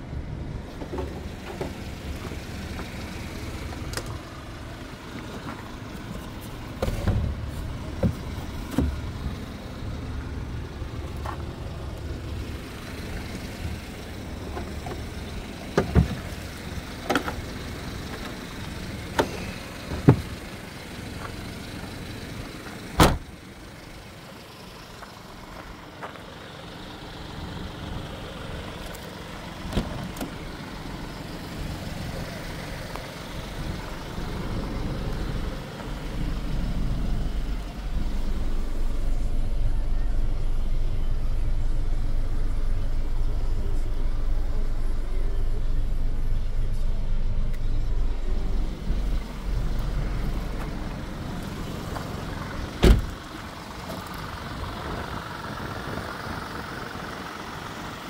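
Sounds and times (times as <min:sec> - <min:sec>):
diesel engine idling: 0:00.0 - 0:58.0.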